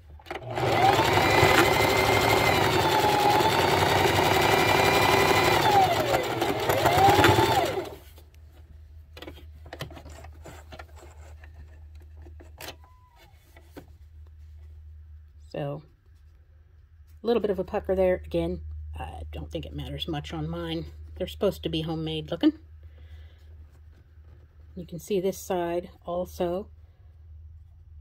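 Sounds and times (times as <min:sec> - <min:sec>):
sewing machine stitching: 0:00.1 - 0:08.1.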